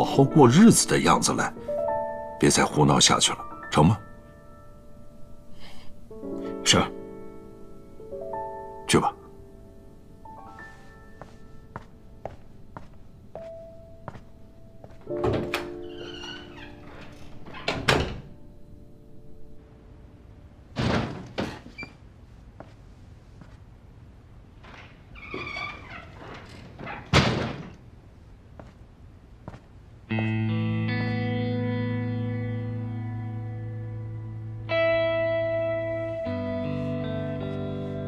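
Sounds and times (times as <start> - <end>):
faint held piano notes: 0.0 - 20.6
footsteps on wooden floor: 10.5 - 15.6, 29.4 - 30.4
door hinge squeaking: 15.2 - 18.3, 25.2 - 27.2
door banging shut: 15.2 - 18.4, 20.8 - 21.8, 26.2 - 27.8.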